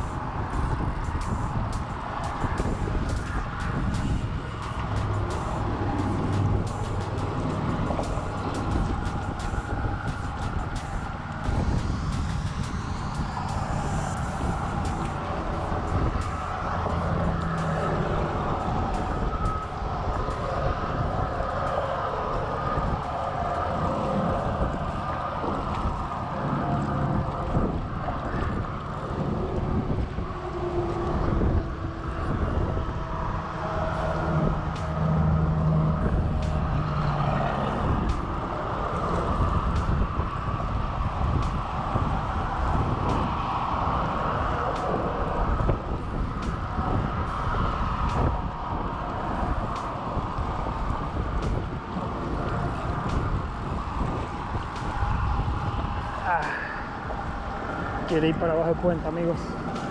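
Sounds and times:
highway traffic passing: 0:00.0 - 0:59.9.

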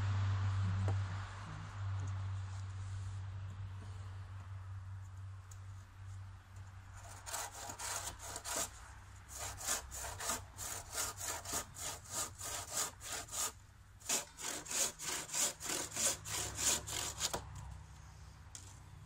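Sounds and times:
handsaw cutting wood: 0:07.0 - 0:17.4.

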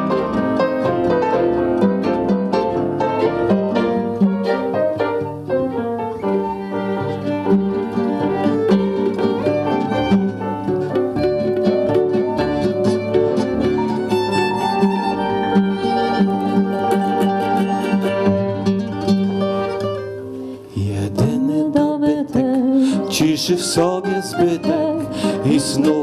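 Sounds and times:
accordion: 0:00.0 - 0:20.3
acoustic guitar: 0:00.0 - 0:26.0
piano: 0:00.0 - 0:26.0
plucked mandolin: 0:00.0 - 0:26.0
violin: 0:00.0 - 0:26.0.

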